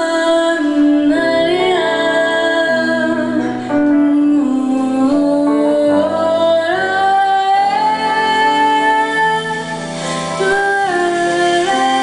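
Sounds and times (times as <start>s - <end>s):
electric guitar: 0.0s - 12.0s
woman singing long held notes: 0.0s - 12.0s.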